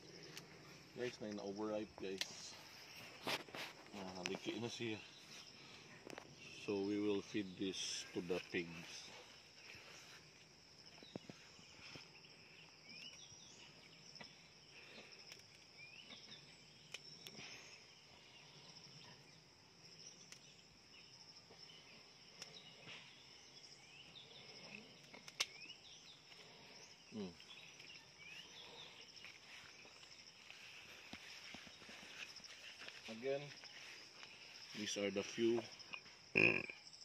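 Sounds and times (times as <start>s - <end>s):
insects chirring: 0.0s - 37.0s
sharp clicks: 25.0s - 25.6s.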